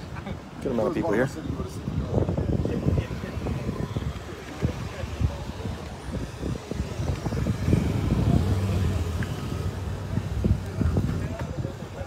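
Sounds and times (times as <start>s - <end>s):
distant voices: 0.0s - 12.0s
wind rumbling on microphone: 0.0s - 12.0s
low engine hum: 4.6s - 11.8s.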